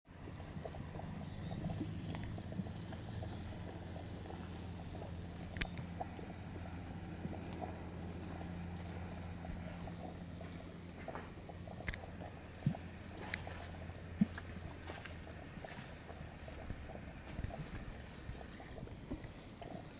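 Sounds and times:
mud bubbling and popping: 0.1s - 19.9s.

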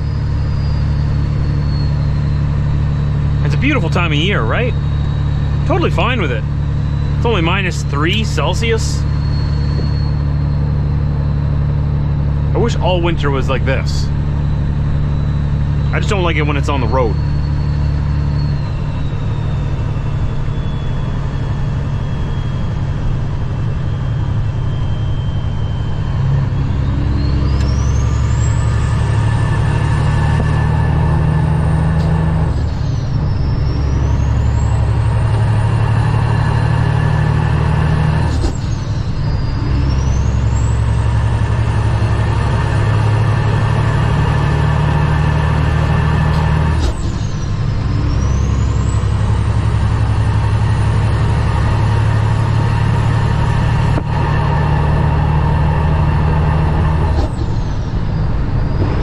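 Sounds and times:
diesel truck engine drone: 0.0s - 59.0s
turbo whistle: 4.0s - 11.4s.

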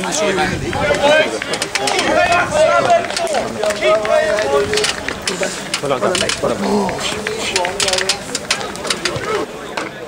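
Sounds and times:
men shouting: 0.0s - 9.5s.

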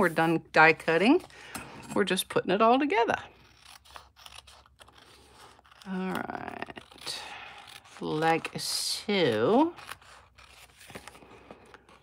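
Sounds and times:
scissors cutting paper: 3.3s - 12.0s.

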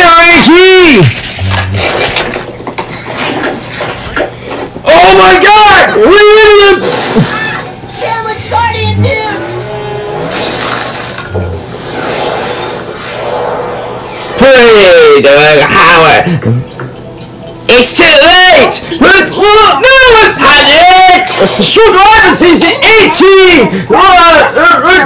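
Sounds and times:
high-pitched swooping voice: 7.6s - 10.3s
background music: 7.6s - 10.4s.

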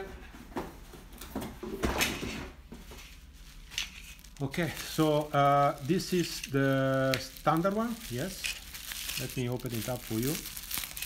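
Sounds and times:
knocks and rustles of packaging: 0.4s - 11.0s.

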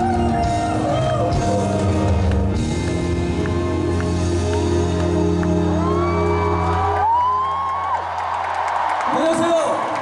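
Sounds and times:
crowd cheering: 2.8s - 10.0s
high whoop: 3.7s - 9.1s.

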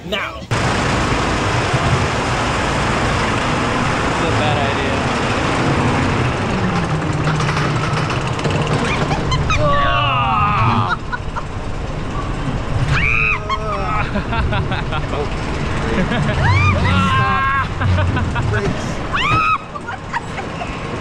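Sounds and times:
roller coaster wheels rumbling: 0.0s - 21.0s.

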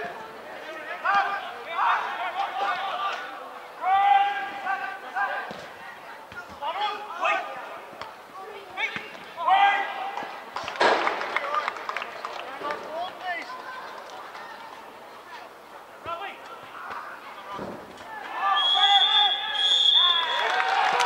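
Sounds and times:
footballers shouting: 0.8s - 5.4s, 8.4s - 11.2s.

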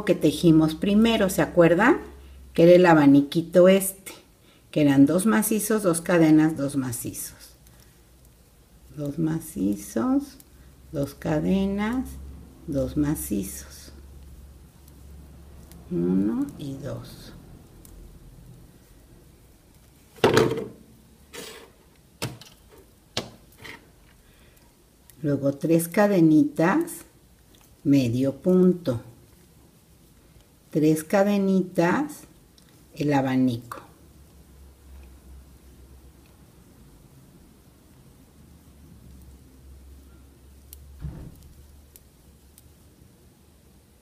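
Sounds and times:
low steady hum: 0.0s - 44.0s
soft brushing sound: 21.2s - 22.0s.

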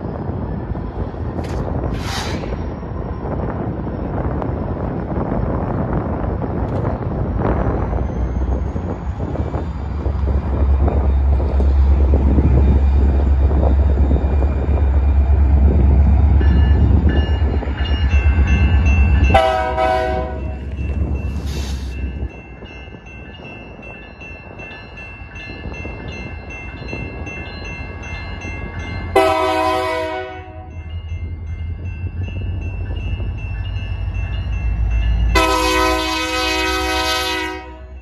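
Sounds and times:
locomotive engine rumble: 0.0s - 38.0s
locomotive horn blast: 19.3s - 20.6s, 29.2s - 30.7s, 35.3s - 38.0s.

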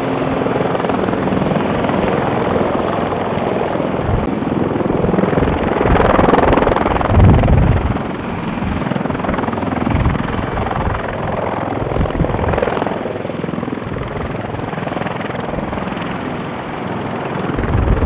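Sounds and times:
helicopter rotor and turbine: 0.0s - 18.0s.

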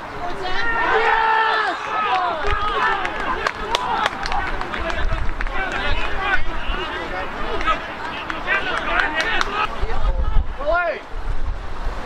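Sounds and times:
men shouting: 0.3s - 11.0s
sharp claps: 2.1s - 6.1s, 7.5s - 9.7s.

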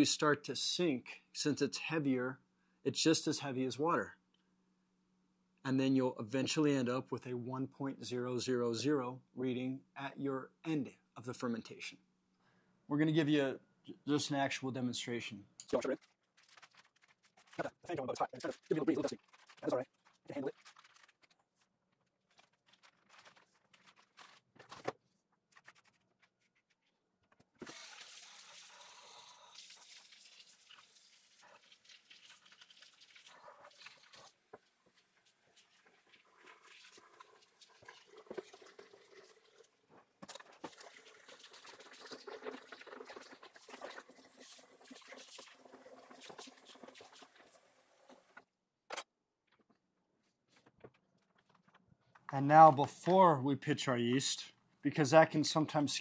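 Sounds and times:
water running into a bucket: 15.7s - 21.4s, 27.6s - 48.4s.

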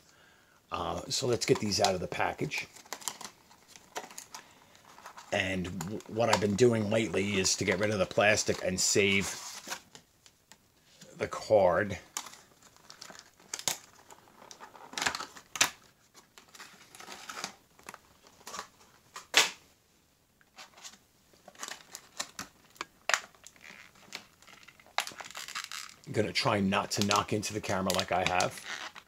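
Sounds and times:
plastic packaging crinkling: 1.1s - 10.0s, 11.9s - 19.4s, 20.5s - 29.0s.

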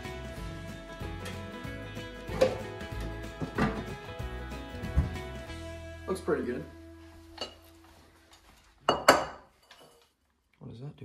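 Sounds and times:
faint background music: 0.0s - 9.3s
ceramic bowl knocking on countertop: 8.9s - 9.4s.

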